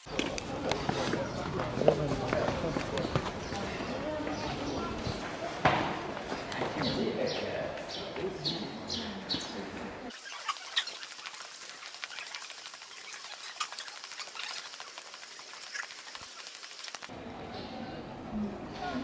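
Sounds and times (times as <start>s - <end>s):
small birds chirping: 6.8s - 17.1s
high-pitched crackle of clicks: 10.1s - 17.1s.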